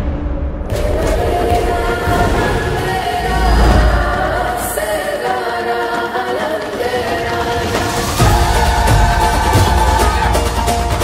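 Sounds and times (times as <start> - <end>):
choir singing long notes: 0.7 - 11.0.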